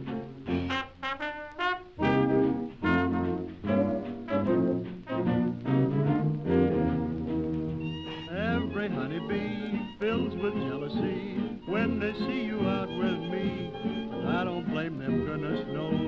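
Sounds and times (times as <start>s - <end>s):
early jazz band record: 0.0s - 16.0s.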